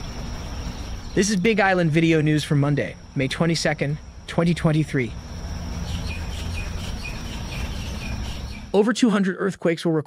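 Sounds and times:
bird chirping: 0.0s - 8.8s
high insect drone: 0.0s - 8.8s.

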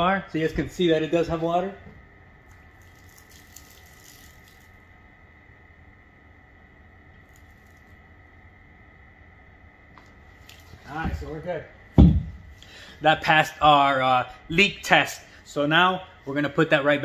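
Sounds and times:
faint steady noise: 0.0s - 17.0s
thin high steady whine: 0.0s - 17.0s.

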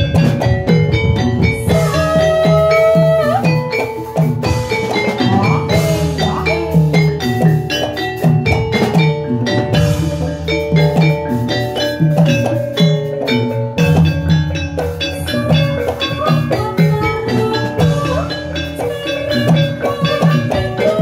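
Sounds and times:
metallophones playing fast melody: 0.0s - 21.0s
steady drum beats: 0.0s - 21.0s.

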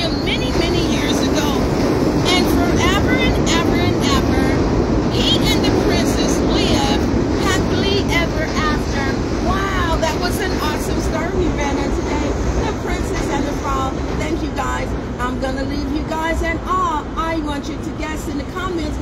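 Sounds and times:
people talking: 0.0s - 19.0s
traffic rumble: 0.0s - 19.0s.

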